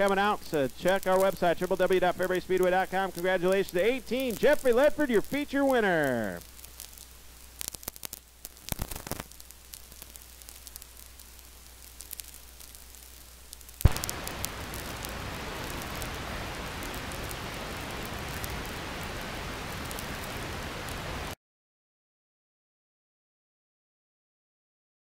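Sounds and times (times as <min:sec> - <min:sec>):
faint hiss: 0:00.0 - 0:21.4
loud steady hiss: 0:00.0 - 0:21.4
scattered clicks: 0:11.8 - 0:16.1
sharp pop: 0:13.8 - 0:14.5.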